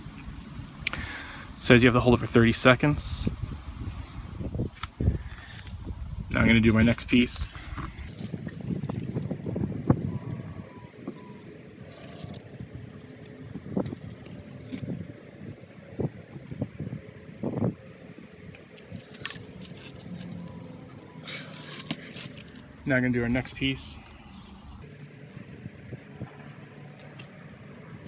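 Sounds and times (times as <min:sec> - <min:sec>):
plastic fittings rustling: 0:18.7 - 0:20.7, 0:21.4 - 0:22.8.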